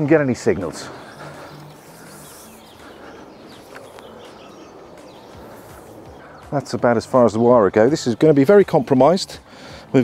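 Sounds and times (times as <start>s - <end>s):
faint bird chirps: 0.7s - 6.6s.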